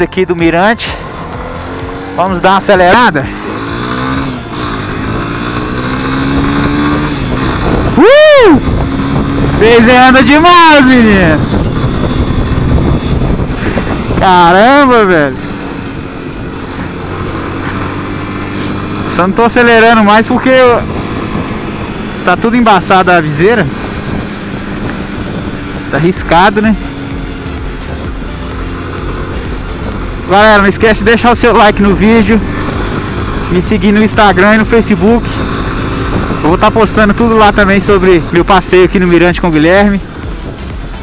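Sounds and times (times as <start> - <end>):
motorcycle engine revving: 0.0 - 41.0
wind noise: 3.3 - 19.1, 22.9 - 30.3, 31.0 - 39.0.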